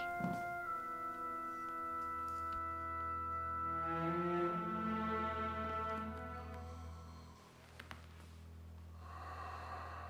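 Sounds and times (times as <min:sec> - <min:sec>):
faint orchestral music: 0:00.0 - 0:10.0
person breathing out through nose: 0:09.0 - 0:10.0.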